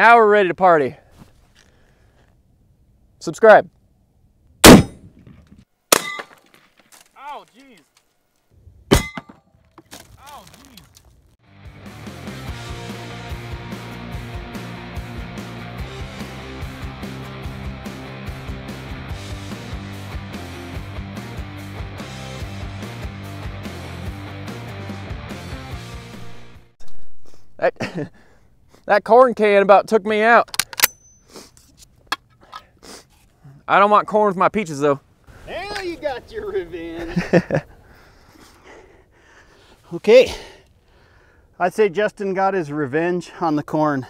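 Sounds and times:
sharp ringing metallic bangs: 0:04.6 - 0:05.1, 0:05.9 - 0:06.4, 0:08.9 - 0:09.5
rifle shot: 0:04.6 - 0:06.4
background music: 0:11.5 - 0:26.7.

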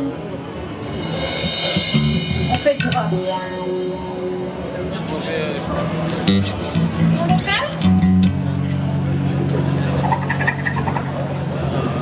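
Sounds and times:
cymbal ringing: 0:00.8 - 0:05.4.

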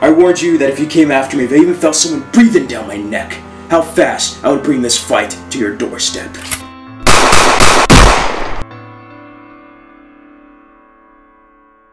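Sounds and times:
handgun shots: 0:06.4 - 0:08.6.

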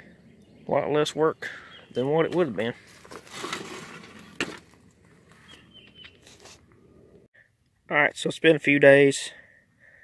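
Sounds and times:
rustling handling noise: 0:02.3 - 0:05.6.

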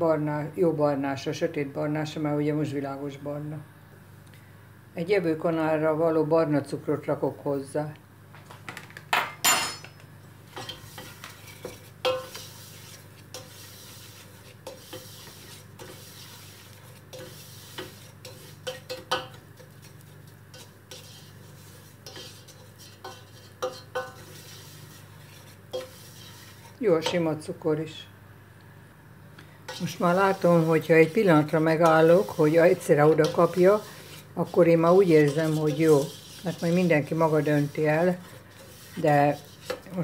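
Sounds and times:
wooden spoon scraping metal pot: 0:10.5 - 0:27.3, 0:29.6 - 0:40.0.

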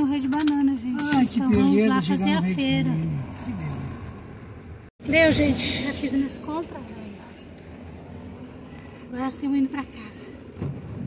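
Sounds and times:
car engine rumble: 0:00.0 - 0:11.0.

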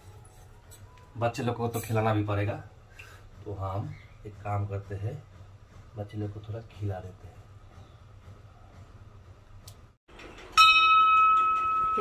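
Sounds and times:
bell ringing: 0:10.5 - 0:12.0.

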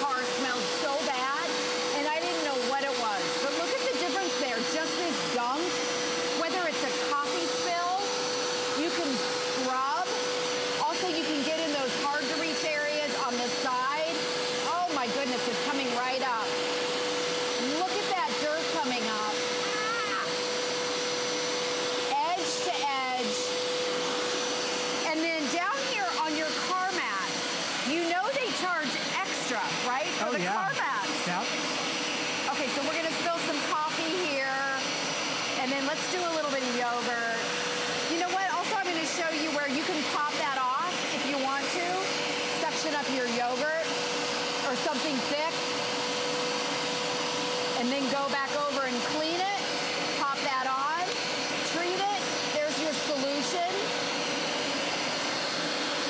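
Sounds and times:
carpet cleaner motor running: 0:00.0 - 0:56.0.

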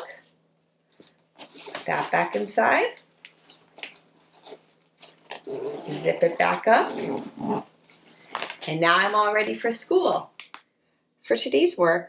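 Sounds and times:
woman speaking: 0:00.0 - 0:00.2, 0:01.8 - 0:03.1, 0:05.7 - 0:07.4, 0:08.6 - 0:10.4, 0:11.2 - 0:12.0.

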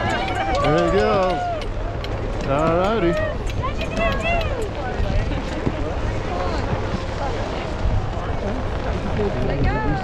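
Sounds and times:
group of people talking: 0:00.0 - 0:10.0
wind rumbling on microphone: 0:00.0 - 0:10.0.

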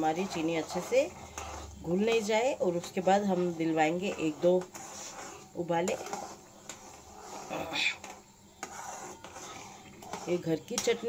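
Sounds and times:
spoon scraping a pan: 0:00.0 - 0:11.0.

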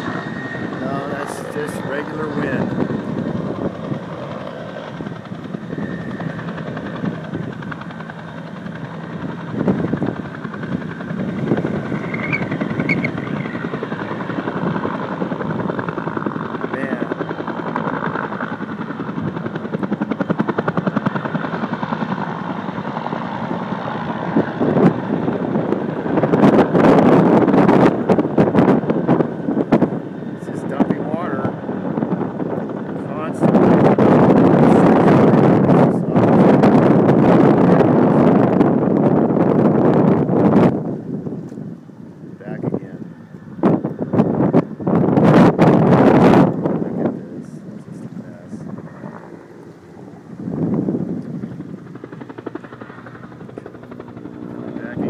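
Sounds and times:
helicopter rotor chopping: 0:00.0 - 0:55.0
wind buffeting microphone: 0:00.0 - 0:55.0.

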